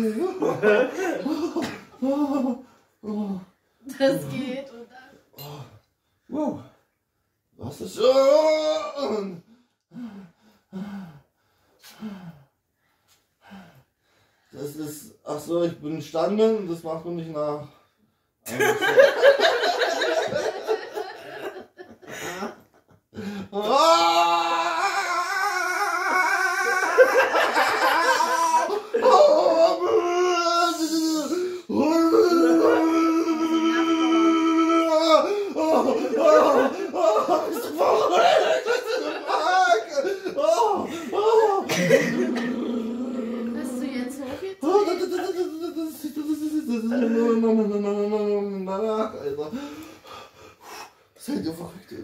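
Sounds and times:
man wailing: 0:08.0 - 0:09.4, 0:23.6 - 0:44.0
man groaning: 0:23.5 - 0:27.1, 0:27.8 - 0:43.9
man crying out in pain: 0:23.5 - 0:38.5, 0:39.1 - 0:43.4.

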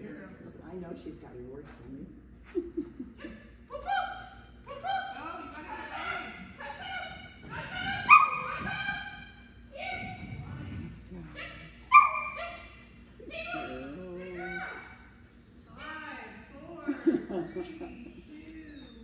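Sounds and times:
small dog barking: 0:07.9 - 0:08.9, 0:11.9 - 0:12.7.

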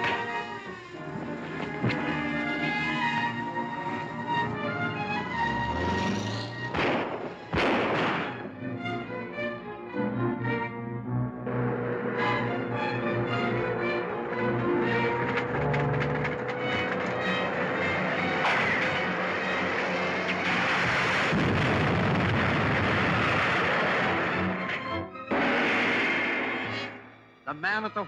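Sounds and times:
dramatic orchestral music: 0:00.0 - 0:28.0
loud dense noise burst: 0:20.4 - 0:24.5.

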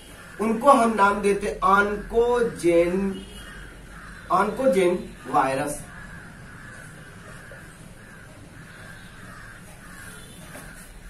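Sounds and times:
crows cawing: 0:00.0 - 0:02.4, 0:03.2 - 0:11.0.

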